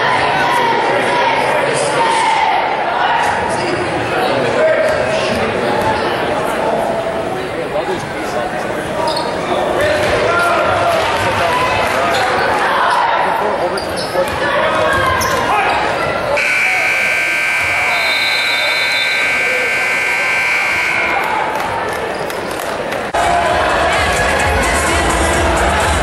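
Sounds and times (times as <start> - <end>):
gym crowd noise: 0.0 - 26.0
scoreboard horn blare: 16.4 - 21.3.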